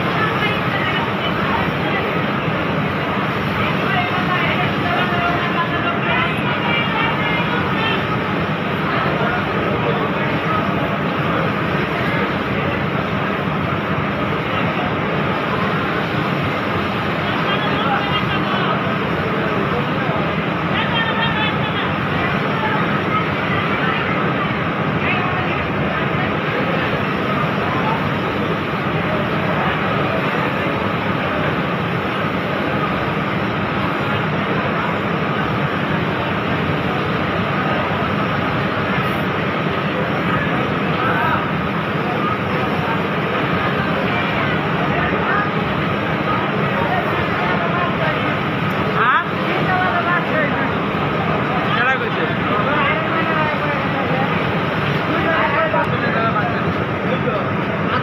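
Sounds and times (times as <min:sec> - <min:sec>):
indistinct voices: 0:00.0 - 0:58.0.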